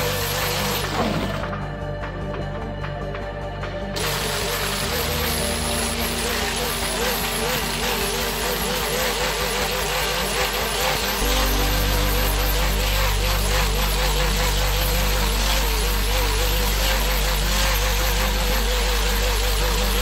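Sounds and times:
angle grinder grinding steel: 0.0s - 1.6s, 4.0s - 20.0s
low hum: 0.0s - 20.0s.

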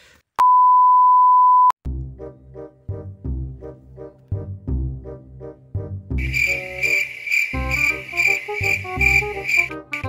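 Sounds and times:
loud high beep tone: 0.4s - 1.7s
music: 1.8s - 10.0s.

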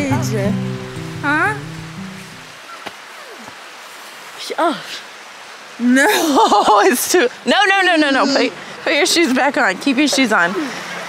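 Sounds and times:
creek flowing over stones: 0.0s - 11.0s.

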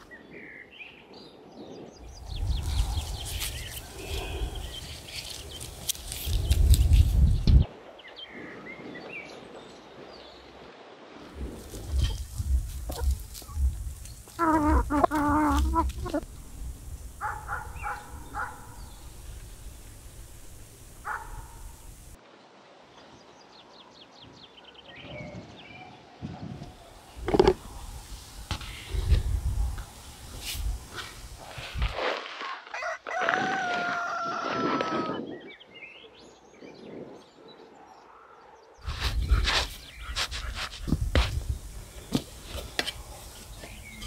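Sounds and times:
hens clucking: 11.6s - 22.1s
rooster crowing: 32.7s - 35.2s.

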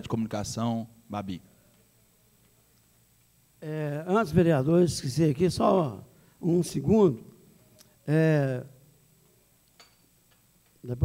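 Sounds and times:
man speaking: 3.6s - 7.4s, 8.0s - 8.8s.

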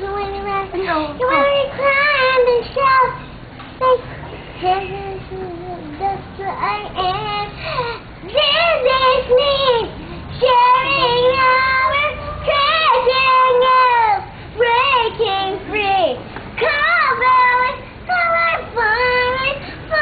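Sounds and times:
girl singing: 0.0s - 20.0s.

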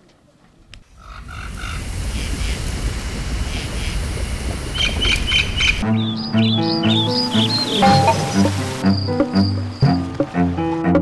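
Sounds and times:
rushing ambience with deep rumble: 0.9s - 10.3s.

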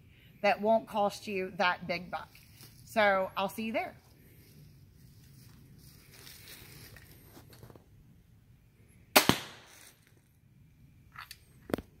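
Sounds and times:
crossbow firing snap: 9.2s - 9.7s.

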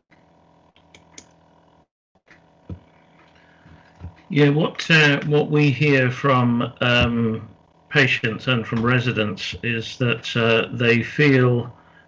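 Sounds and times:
faint microphone hum: 2.7s - 12.0s.

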